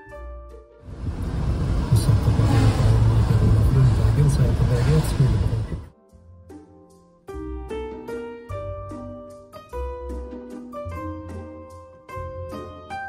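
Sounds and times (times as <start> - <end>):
soft instrumental music: 0.0 - 2.1, 5.9 - 13.0
car road and wind noise: 0.8 - 5.9.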